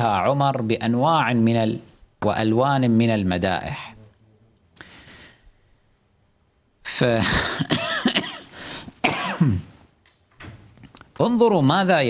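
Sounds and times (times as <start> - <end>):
man clearing his throat: 7.2 - 9.8
man coughing: 7.2 - 9.8.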